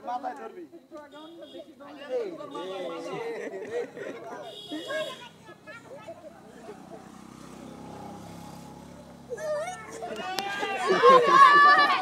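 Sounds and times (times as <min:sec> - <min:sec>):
children and onlookers shouting: 0:09.4 - 0:12.0.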